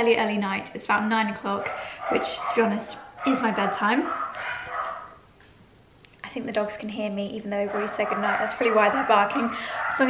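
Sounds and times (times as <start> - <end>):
dogs barking: 1.5 - 5.2, 7.6 - 10.0.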